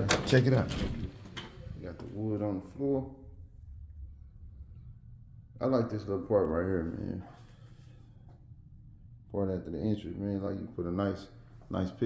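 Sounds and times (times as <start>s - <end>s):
faint low rumble: 0.4s - 12.0s.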